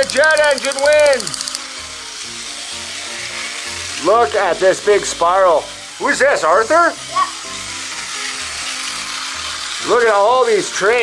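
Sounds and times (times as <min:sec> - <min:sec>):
toy trains whirring on track: 0:00.0 - 0:11.0.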